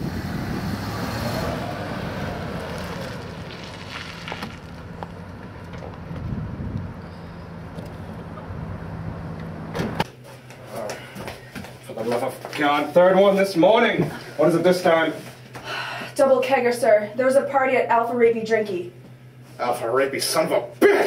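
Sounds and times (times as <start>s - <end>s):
wind on microphone: 0.0s - 2.4s, 6.0s - 7.1s
steady low hum: 0.0s - 21.0s
van door shutting: 9.6s - 10.1s.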